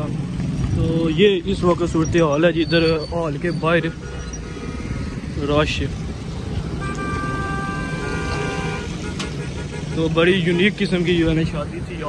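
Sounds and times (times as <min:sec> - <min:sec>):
car and motorcycle engines rumbling: 0:00.0 - 0:12.0
vehicle horn: 0:06.7 - 0:10.6.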